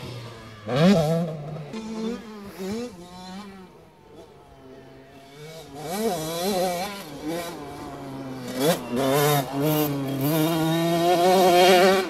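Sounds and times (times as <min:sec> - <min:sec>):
two-stroke motorcycle engine revving: 0:00.0 - 0:04.3, 0:05.2 - 0:12.0.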